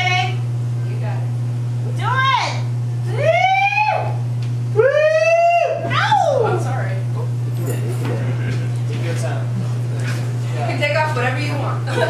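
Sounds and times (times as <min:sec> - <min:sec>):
steady low hum: 0:00.0 - 0:12.0
high voice whooping: 0:02.1 - 0:04.2, 0:04.8 - 0:06.7.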